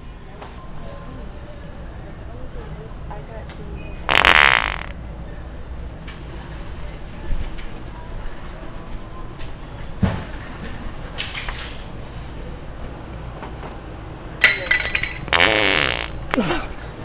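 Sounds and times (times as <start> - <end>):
wet fart sounds from prank device: 4.1 - 4.9, 15.3 - 16.5.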